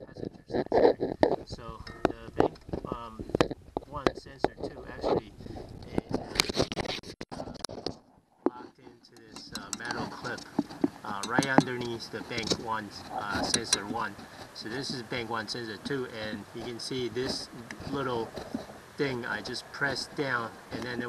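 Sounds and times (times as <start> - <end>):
plastic plug clicks and scrapes: 5.8 - 8.0.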